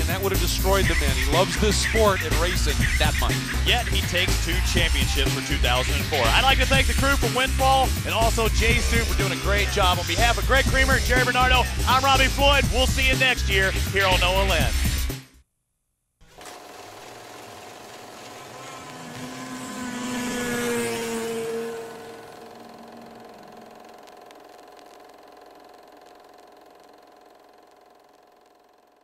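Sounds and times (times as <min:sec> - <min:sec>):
drone with rising whine: 0:00.0 - 0:13.4, 0:17.4 - 0:28.4.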